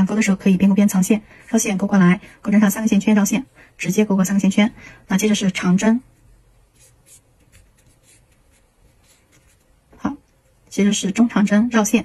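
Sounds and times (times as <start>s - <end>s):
yarn scratching on crochet hook: 6.6s - 10.2s.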